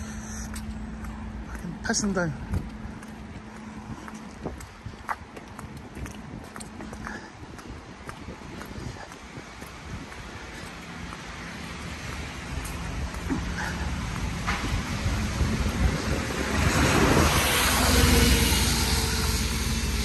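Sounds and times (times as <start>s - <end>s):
footsteps on wet pavement: 0.0s - 20.0s
low hum of passing traffic: 0.0s - 20.0s.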